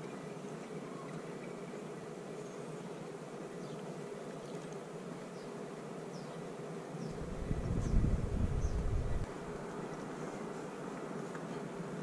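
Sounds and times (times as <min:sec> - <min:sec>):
steady outdoor drone: 0:00.0 - 0:12.0
wind buffeting microphone: 0:07.1 - 0:09.3.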